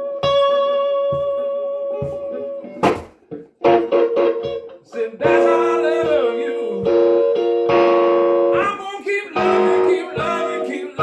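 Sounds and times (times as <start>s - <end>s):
electric guitar playing blues: 0.0s - 11.0s.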